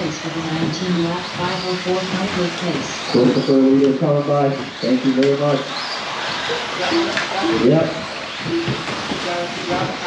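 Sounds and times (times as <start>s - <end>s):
man announcing in sing-song voice: 6.9s - 8.0s.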